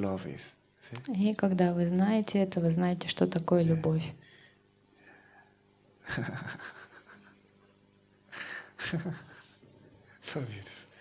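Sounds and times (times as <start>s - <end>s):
person laughing: 6.0s - 7.4s, 8.4s - 9.6s.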